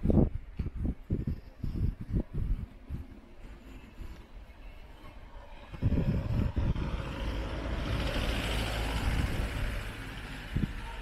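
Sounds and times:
vehicle passing: 3.0 - 11.0.

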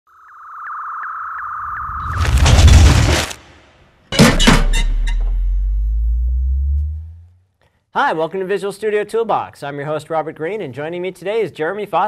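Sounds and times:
pure electronic tone: 0.1 - 2.2, 4.2 - 7.4.

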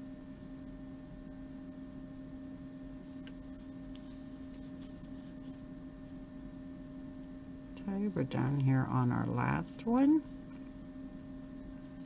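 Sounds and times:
low electrical hum with tones: 0.0 - 12.0.

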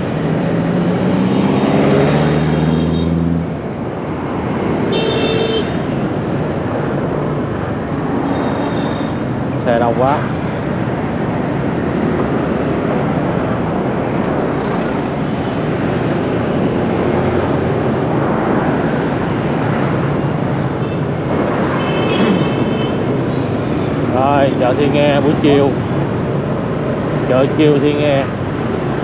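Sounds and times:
motorbike and car engines passing: 0.0 - 5.0, 9.1 - 29.0
tyres passing: 0.0 - 29.0.

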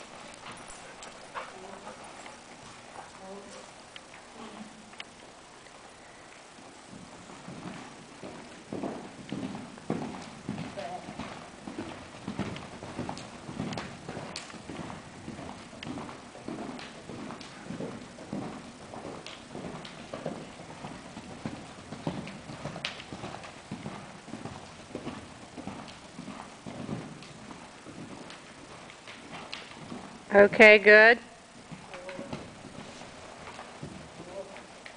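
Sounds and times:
horse hoofbeats cantering: 0.0 - 34.9.

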